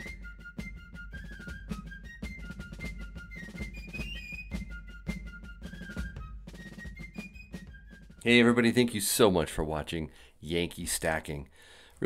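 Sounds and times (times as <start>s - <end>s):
snare drum strokes: 0.0s - 8.3s
fife melody: 0.0s - 8.9s.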